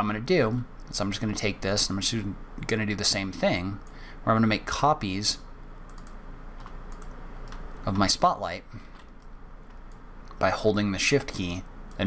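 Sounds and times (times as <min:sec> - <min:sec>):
low steady hum: 0:00.0 - 0:12.0
computer keyboard and mouse clicks: 0:05.9 - 0:07.7.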